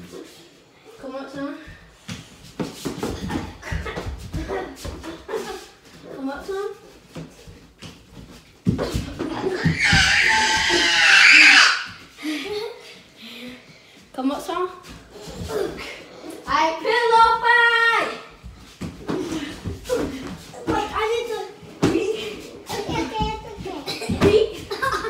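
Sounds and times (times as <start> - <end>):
loud cry: 9.5 - 12.0.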